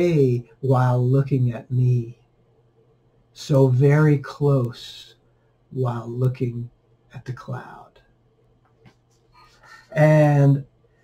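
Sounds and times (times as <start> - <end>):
man speaking: 0.0 - 2.2, 3.4 - 8.0, 9.8 - 10.7
faint breathing: 5.2 - 5.7, 9.3 - 10.0.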